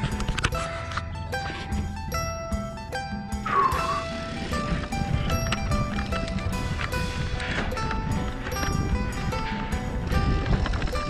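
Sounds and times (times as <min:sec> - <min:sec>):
sustained music notes: 0:00.0 - 0:11.0.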